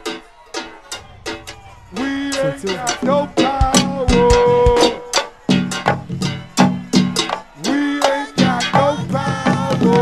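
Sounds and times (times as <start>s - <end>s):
drum and percussion hits: 0.0s - 10.0s
live go-go band music: 0.0s - 10.0s.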